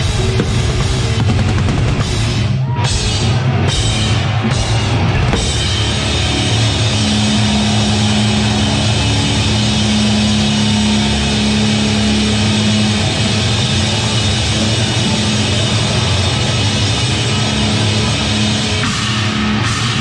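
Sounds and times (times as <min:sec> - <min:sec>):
heavy metal band playing live: 0:00.0 - 0:20.0.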